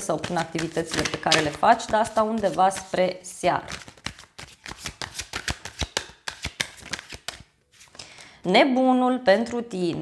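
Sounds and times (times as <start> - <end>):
cards being shuffled: 0.0 - 3.0, 3.7 - 8.0.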